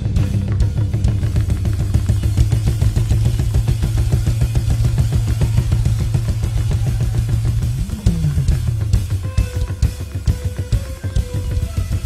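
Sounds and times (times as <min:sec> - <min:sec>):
drum kit fast beat: 0:00.0 - 0:12.0
held bass line: 0:00.0 - 0:12.0.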